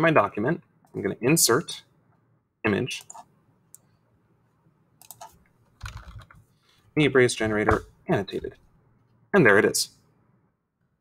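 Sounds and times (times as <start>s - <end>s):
computer keyboard typing: 5.0s - 6.4s.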